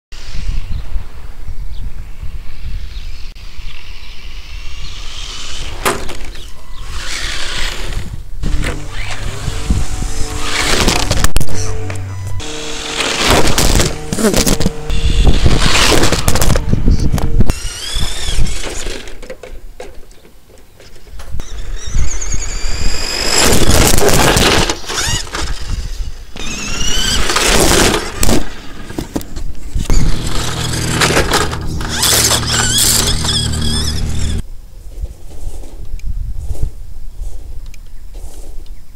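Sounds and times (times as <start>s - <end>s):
toy car motor whining: 4.8s - 19.2s, 21.4s - 28.9s, 29.8s - 34.4s
toy car knocks and crashes: 5.7s - 6.5s, 26.4s - 34.4s.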